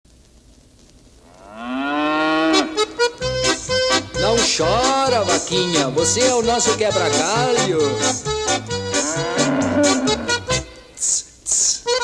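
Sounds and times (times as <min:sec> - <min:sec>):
cow mooing: 0:01.3 - 0:02.9, 0:08.7 - 0:10.7
band music with steady beat: 0:03.0 - 0:10.8.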